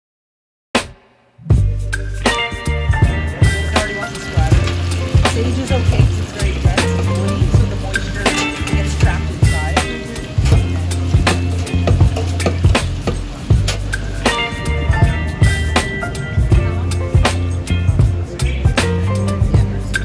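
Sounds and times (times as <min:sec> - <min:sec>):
background music with beat: 0:00.8 - 0:20.0
leaves deep-frying in hot oil: 0:03.7 - 0:14.2.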